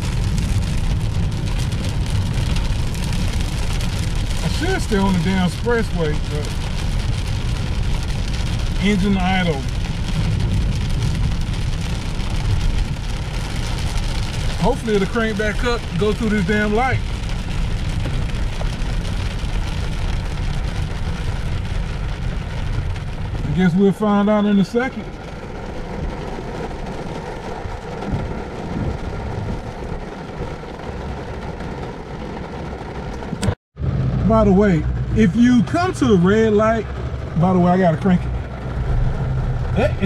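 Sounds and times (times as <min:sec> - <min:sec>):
road and engine noise inside car: 0:00.0 - 0:40.0.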